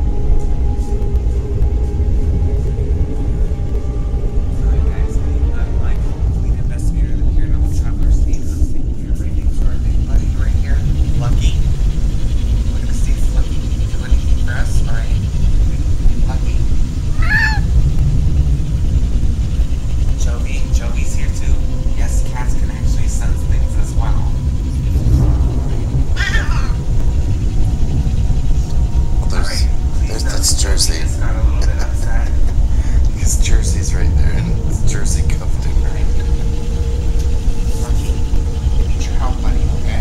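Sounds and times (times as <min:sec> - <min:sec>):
low rumbling noise: 0:00.0 - 0:40.0
cat meowing: 0:17.1 - 0:17.7, 0:26.1 - 0:26.8.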